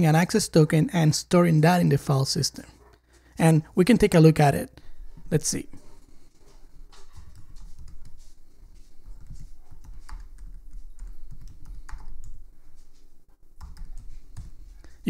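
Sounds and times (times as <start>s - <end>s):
typing on computer keyboard: 7.2s - 8.2s, 9.0s - 12.4s, 13.6s - 14.6s.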